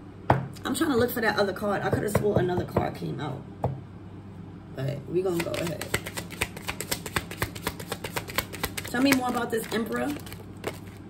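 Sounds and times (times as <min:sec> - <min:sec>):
cards being shuffled: 0:05.4 - 0:11.0.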